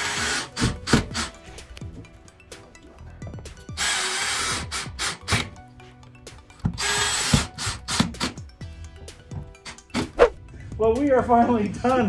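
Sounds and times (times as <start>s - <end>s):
drill driving screws into metal: 0.0s - 1.4s, 3.8s - 5.6s, 6.8s - 8.4s.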